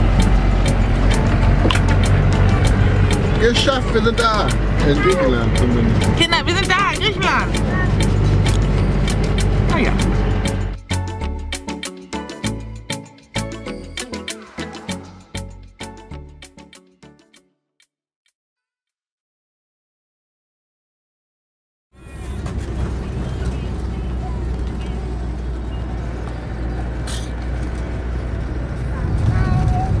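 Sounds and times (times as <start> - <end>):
van engine and tyres rumbling: 0.0 - 16.3, 22.0 - 30.0
child's voice: 4.8 - 5.6, 6.2 - 8.1, 22.0 - 25.2, 28.8 - 30.0.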